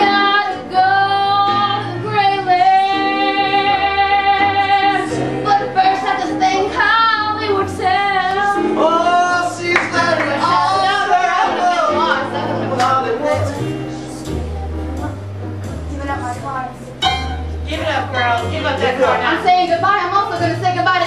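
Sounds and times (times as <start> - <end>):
electric keyboard accompaniment: 0.0 - 21.0.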